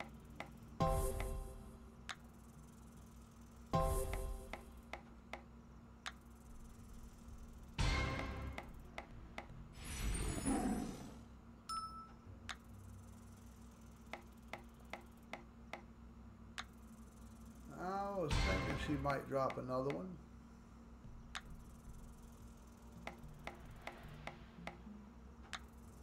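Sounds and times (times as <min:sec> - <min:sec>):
brief chime: 0:11.7 - 0:12.2
reel-stop ticks: 0:16.6 - 0:16.8, 0:19.4 - 0:20.0.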